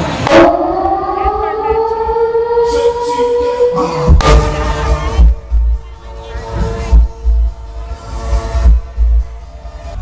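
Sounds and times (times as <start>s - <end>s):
rising siren-like electronic tone: 0.1s - 5.1s.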